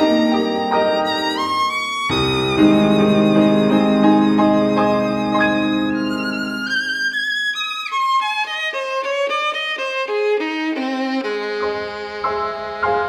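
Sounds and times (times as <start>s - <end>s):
piano low notes: 0.0s - 7.2s, 11.6s - 13.0s
violin playing with vibrato: 0.0s - 13.0s.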